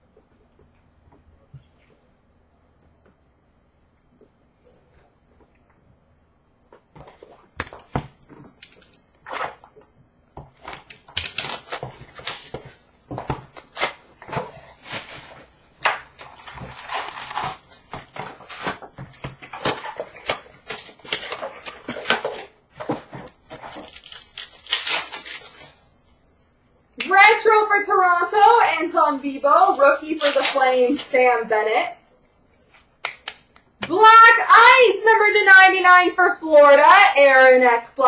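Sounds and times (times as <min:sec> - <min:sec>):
foil wrappers crinkling and tearing: 0:10.7 - 0:12.8, 0:16.1 - 0:18.8, 0:23.5 - 0:25.8, 0:29.6 - 0:31.2.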